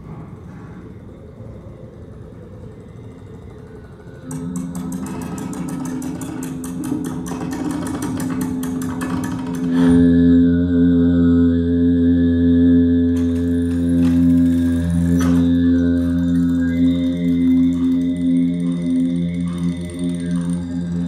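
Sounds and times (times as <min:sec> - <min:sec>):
low layered drone: 0:00.0 - 0:21.0.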